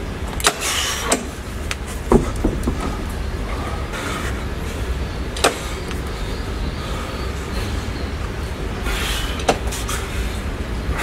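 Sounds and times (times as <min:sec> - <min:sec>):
low hum: 0:00.0 - 0:11.0
dumbbells clicking and knocking: 0:00.4 - 0:03.2.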